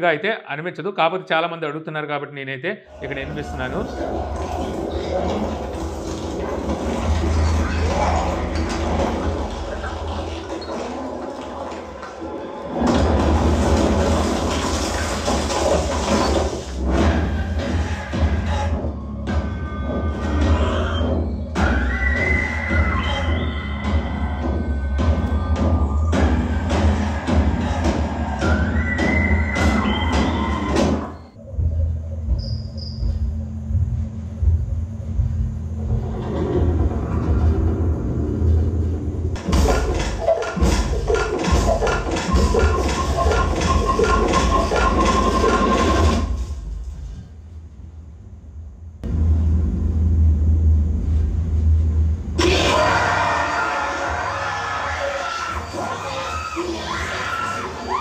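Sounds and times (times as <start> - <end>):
tense film music: 2.9 - 47.2
heavy steady bass: 31.4 - 45.9, 49.0 - 52.4.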